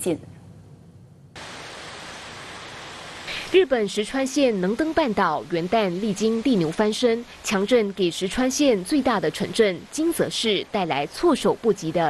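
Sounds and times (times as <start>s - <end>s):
steady rushing hiss: 1.4s - 12.0s.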